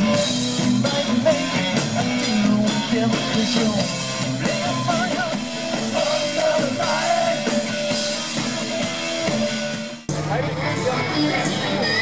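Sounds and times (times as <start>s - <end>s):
man singing: 0.0s - 7.7s
drum kit: 0.0s - 12.0s
electric guitar: 0.0s - 12.0s.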